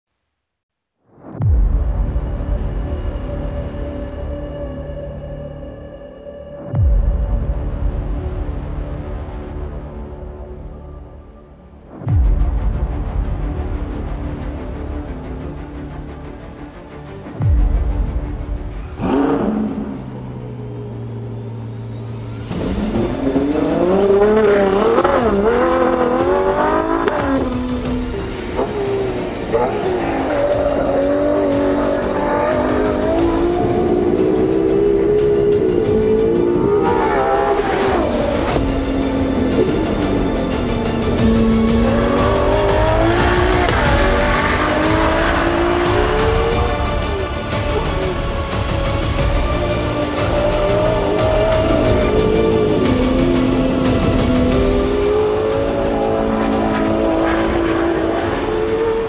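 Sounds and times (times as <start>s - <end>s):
music soundtrack: 1.0s - 59.0s
car engine revving hard: 18.8s - 59.0s.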